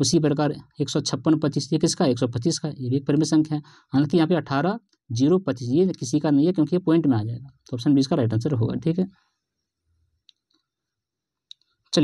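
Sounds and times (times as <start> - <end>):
man speaking: 0.0 - 9.2.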